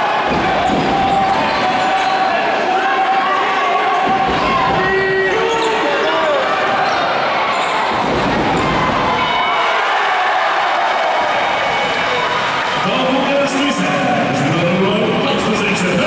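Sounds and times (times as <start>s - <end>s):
din of spectators' voices: 0.0s - 16.0s
basketball bouncing on court: 0.3s - 2.1s
shoes squeaking: 5.2s - 8.7s.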